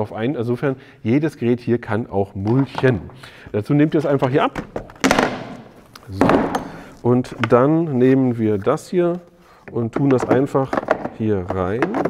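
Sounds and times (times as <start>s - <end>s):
plastic box clacking on wooden table: 9.9s - 12.0s.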